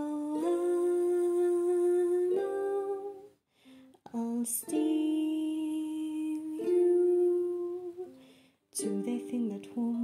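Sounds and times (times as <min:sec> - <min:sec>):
solo voice singing long notes: 0:00.0 - 0:03.3.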